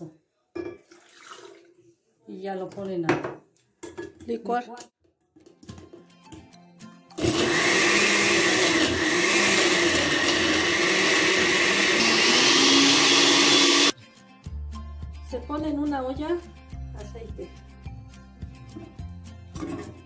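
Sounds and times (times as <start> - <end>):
blender running: 7.2 - 14.0.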